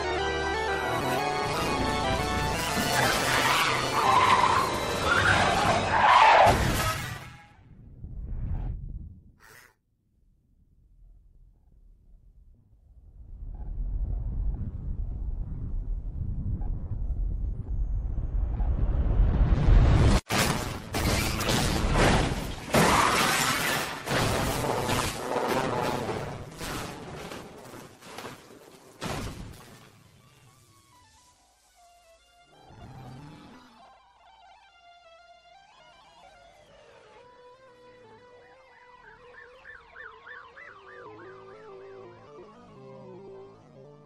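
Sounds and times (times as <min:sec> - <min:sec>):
race car tires squealing: 0:02.7 - 0:06.9
crash with shattering debris: 0:20.1 - 0:29.9.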